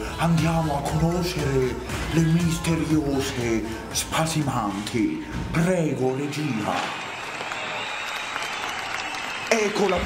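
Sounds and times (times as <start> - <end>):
audience applauding: 6.3 - 10.0.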